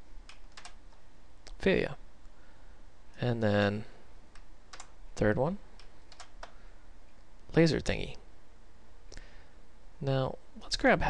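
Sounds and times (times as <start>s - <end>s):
faint low hum: 0.0s - 11.0s
computer mouse click: 0.3s - 0.8s, 4.3s - 5.0s, 5.8s - 6.6s.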